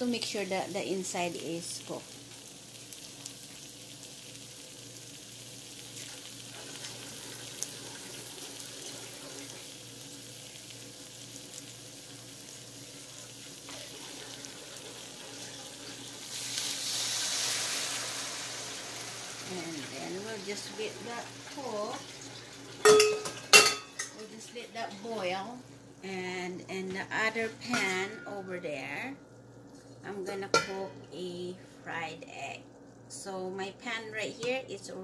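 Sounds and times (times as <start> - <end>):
water hissing in hot pan: 0.0 - 26.3
sausages sizzling in a frying pan: 0.0 - 35.0.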